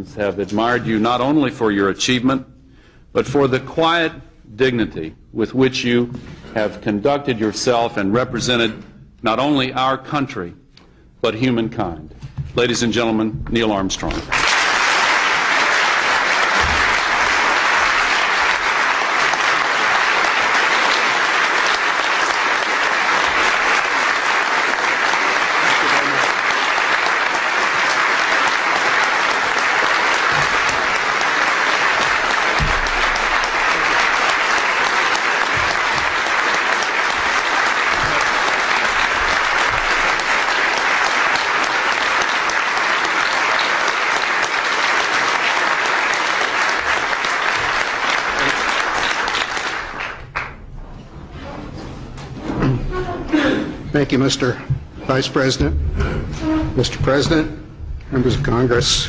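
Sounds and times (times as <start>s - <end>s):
audience applauding: 14.2s - 50.7s.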